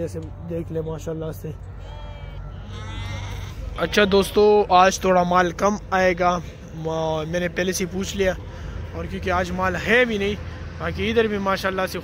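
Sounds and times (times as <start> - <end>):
sheep bleating: 1.6 - 4.7.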